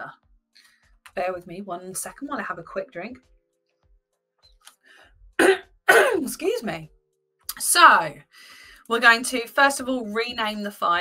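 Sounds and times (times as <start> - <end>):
woman speaking: 1.1 - 3.2, 5.9 - 6.9, 7.5 - 11.0
woman coughing: 5.4 - 6.3.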